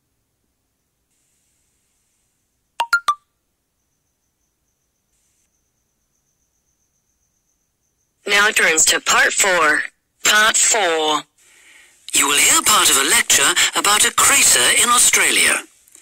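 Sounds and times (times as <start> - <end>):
three-note electronic chime: 2.8 - 3.2.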